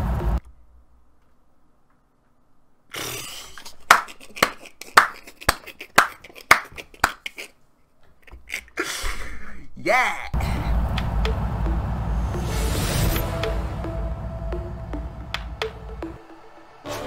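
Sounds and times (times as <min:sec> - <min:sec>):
loud rumbling: 0:00.0 - 0:00.4, 0:10.4 - 0:16.9
person clapping hands: 0:03.9 - 0:07.4, 0:15.3 - 0:16.0.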